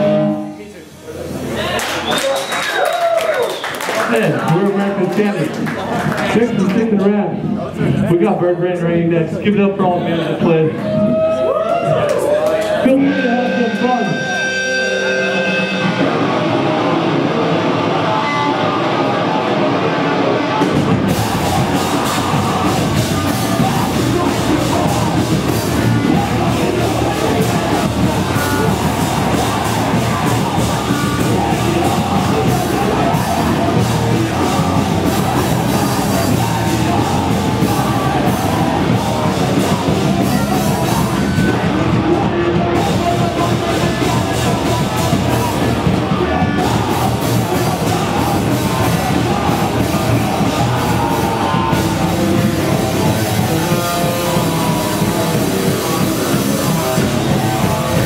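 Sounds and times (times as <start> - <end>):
punk band playing live: 0.0 - 0.6, 10.4 - 58.0
vocals: 0.0 - 58.0
drums crashing: 11.9 - 58.0
held guitar notes: 12.9 - 58.0.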